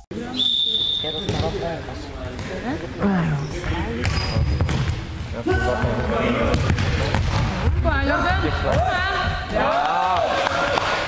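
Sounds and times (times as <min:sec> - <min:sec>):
high whistle: 0:00.3 - 0:01.4.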